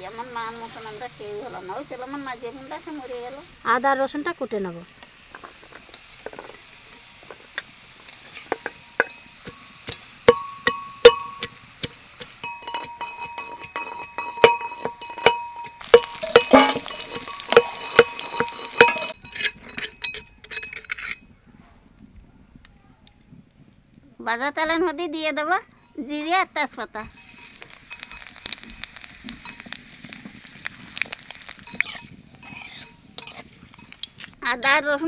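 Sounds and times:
food sizzling in oil: 0:00.0 - 0:21.1, 0:25.1 - 0:35.0
spoon clinking against metal pan: 0:12.4 - 0:21.2, 0:31.6 - 0:35.0.

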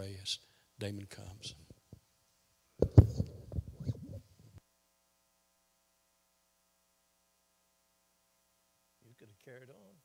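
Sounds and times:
microphone handling noise: 0:02.8 - 0:04.6.

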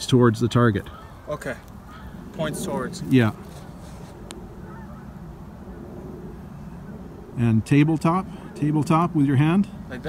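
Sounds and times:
low outdoor background noise: 0:00.0 - 0:10.0.

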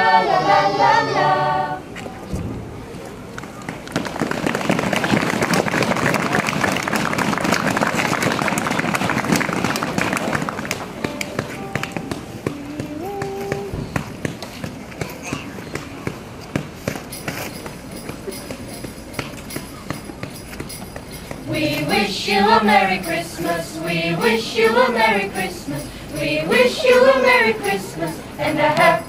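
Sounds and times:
voices: 0:00.0 - 0:03.8, 0:17.6 - 0:29.0
audience clapping: 0:03.9 - 0:12.2.

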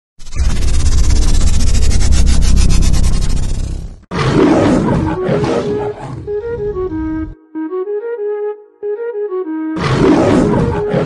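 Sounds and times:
rapidly pulsing rumble: 0:00.2 - 0:04.1
lion roaring: 0:04.1 - 0:06.9, 0:09.8 - 0:11.0
music notes: 0:06.3 - 0:09.8.

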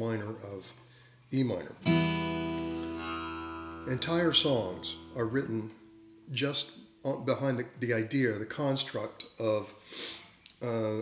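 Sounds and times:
acoustic guitar chord ringing: 0:01.8 - 0:06.5.

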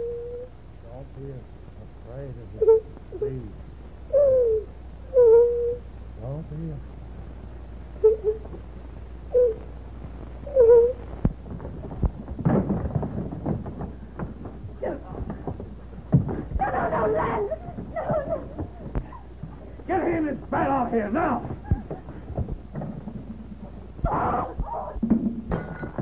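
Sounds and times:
whimpering cries: 0:00.0 - 0:00.5, 0:02.5 - 0:03.5, 0:04.1 - 0:05.9, 0:08.0 - 0:08.6, 0:09.3 - 0:09.7, 0:10.5 - 0:11.1, 0:24.0 - 0:25.0
soundtrack low hum: 0:00.0 - 0:12.5
scuffling and knocks: 0:11.1 - 0:17.0, 0:21.4 - 0:24.0.

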